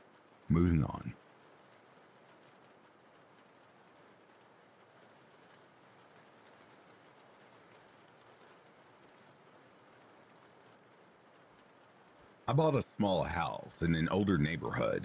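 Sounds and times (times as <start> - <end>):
faint steady rain: 0.0 - 15.0.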